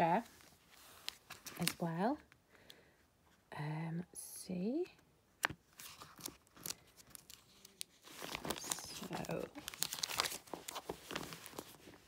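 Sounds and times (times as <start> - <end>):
catalogue pages flipping: 0.3 - 1.9, 5.4 - 12.0.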